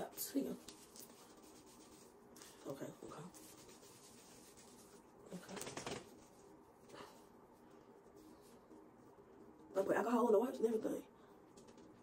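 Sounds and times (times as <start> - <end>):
wipe rubbing on skin: 0.1 - 6.8.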